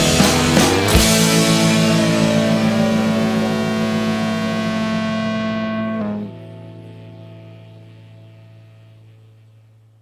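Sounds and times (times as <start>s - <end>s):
rock band holding a final chord: 0.0s - 6.5s.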